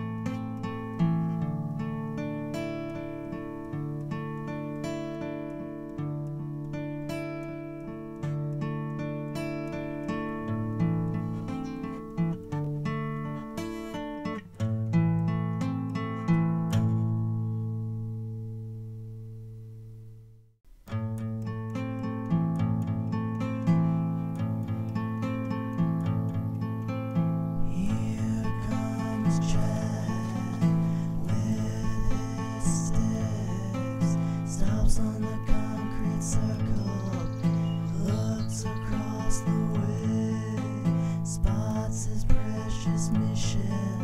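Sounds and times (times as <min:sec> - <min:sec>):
acoustic guitar music: 0:00.0 - 0:44.0.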